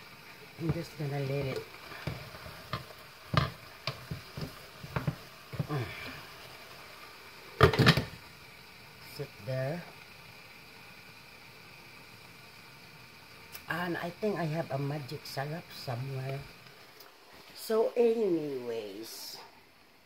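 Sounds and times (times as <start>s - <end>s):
wooden spoon stirring in metal pot: 0.5s - 6.3s.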